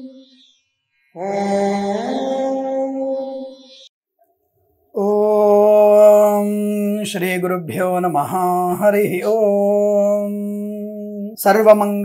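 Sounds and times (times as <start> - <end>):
person chanting: 1.2 - 3.7, 5.0 - 12.0.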